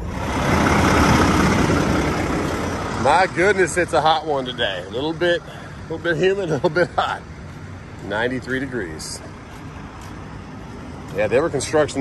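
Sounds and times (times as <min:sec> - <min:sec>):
vehicle noise rumble: 0:00.0 - 0:12.0.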